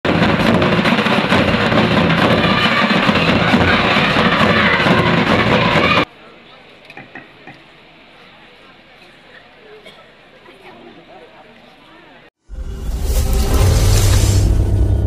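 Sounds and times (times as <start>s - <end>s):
kettle drums and barrel drum: 0.1s - 6.1s.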